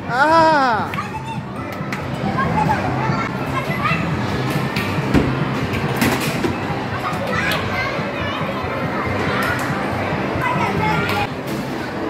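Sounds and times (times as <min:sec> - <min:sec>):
children's voices and chatter: 0:00.0 - 0:12.0.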